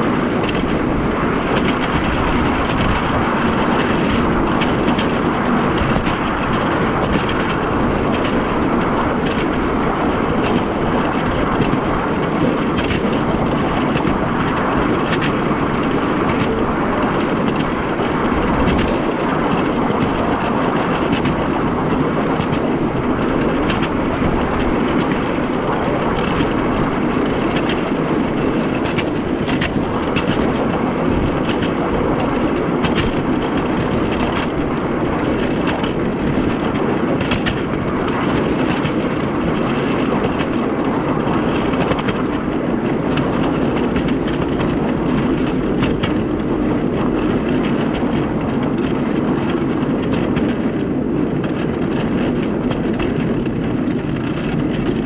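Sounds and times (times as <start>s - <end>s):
miniature train wheels rumbling on rails: 0.0s - 55.0s
rail joint clicks: 0.0s - 55.0s.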